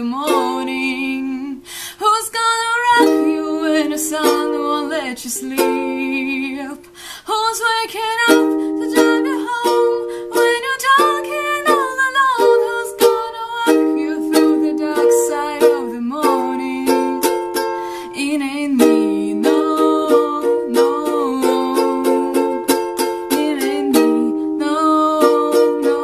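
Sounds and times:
ukulele strumming: 0.0s - 26.0s
woman singing: 0.0s - 26.0s.

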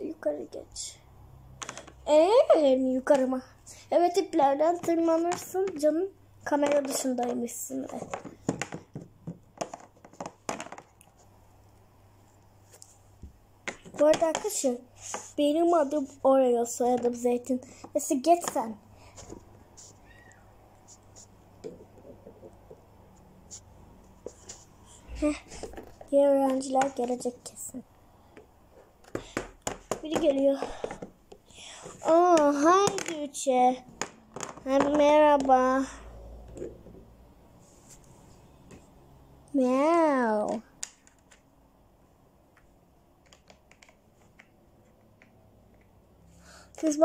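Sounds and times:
plastic figurines clicking on table: 1.6s - 2.0s, 32.4s - 33.2s, 34.0s - 35.5s, 43.2s - 46.0s.

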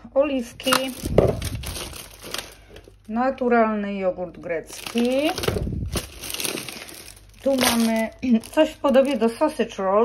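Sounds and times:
plastic bag crinkling: 0.5s - 3.5s, 4.3s - 9.9s
item knocking on counter: 1.1s - 1.4s.

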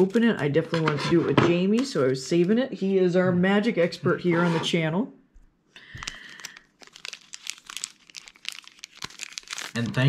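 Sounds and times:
foil crinkling: 5.8s - 10.0s
foil wrapper tearing: 6.0s - 10.0s.

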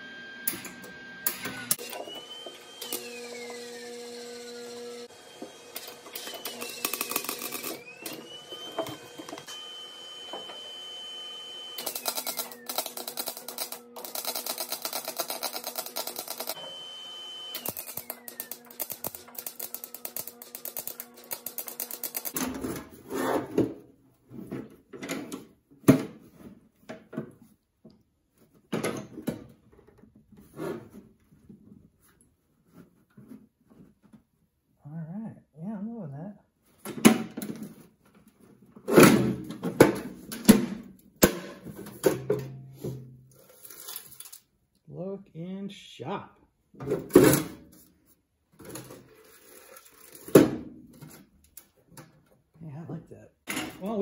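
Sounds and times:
high welder whine: 0.0s - 22.4s
welding arc crackle: 17.6s - 22.4s.

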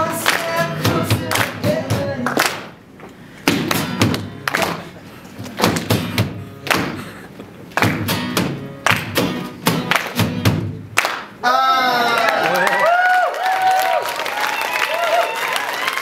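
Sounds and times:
acoustic guitars strumming: 0.0s - 11.0s
hands slapping guitar case: 5.4s - 7.0s.

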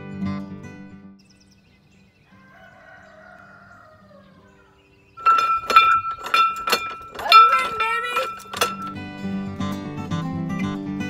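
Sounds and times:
faint rooster crow: 2.2s - 5.0s
farm bell clanging: 5.0s - 9.3s.

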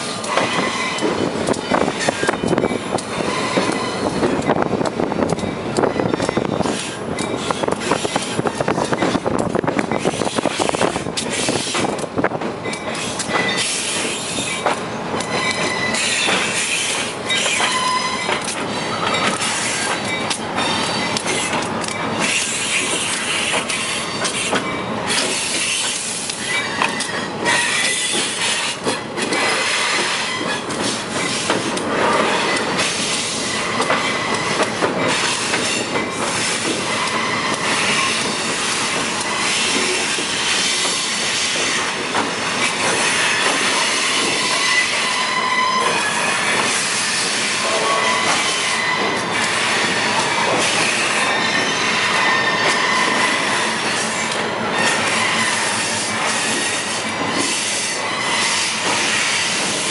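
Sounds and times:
high wheel squeal: 0.0s - 4.6s, 12.8s - 21.6s, 22.2s - 28.8s, 29.4s - 59.9s
rail joint clicks: 0.0s - 59.9s.

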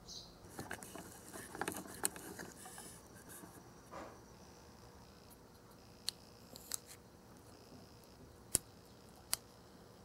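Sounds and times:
plastic spoon scraping toy bowl: 0.5s - 3.6s.

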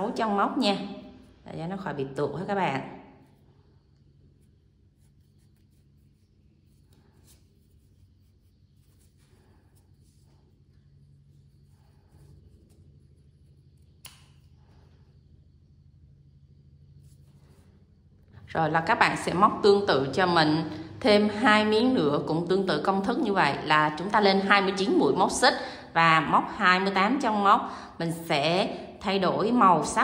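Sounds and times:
faint rustling of yarn: 0.7s - 15.8s, 16.7s - 30.0s
small click: 14.0s - 14.5s.

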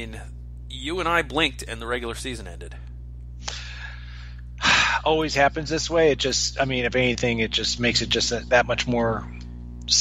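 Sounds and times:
man breathing: 3.4s - 5.0s.

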